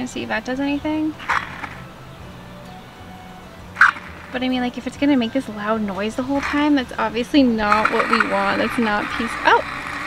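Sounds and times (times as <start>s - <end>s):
fountain pump whine and hum: 0.0s - 10.0s.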